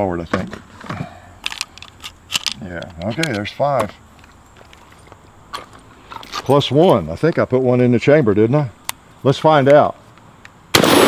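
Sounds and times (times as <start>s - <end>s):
faint clicks of firearm handling: 1.4s - 6.6s.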